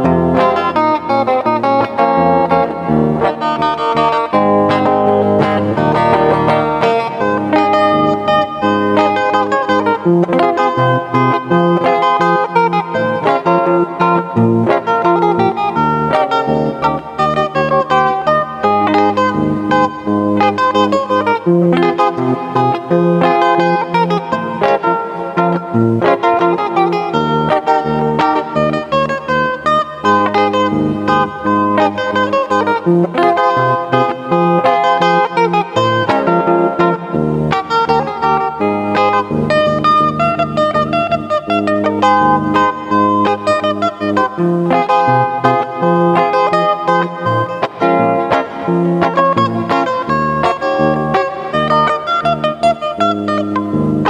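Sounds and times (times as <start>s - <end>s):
electric guitar fingerstyle: 0.0s - 54.0s.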